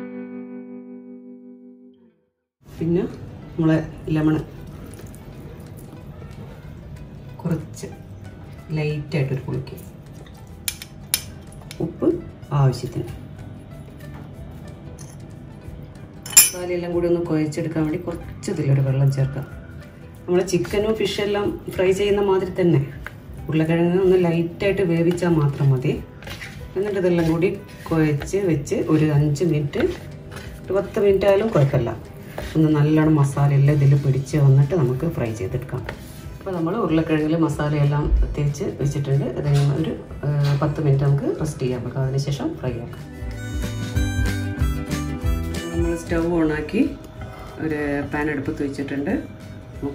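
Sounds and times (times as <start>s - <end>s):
metal spoon clinking on bowl: 10.7s - 11.8s, 16.2s - 16.7s.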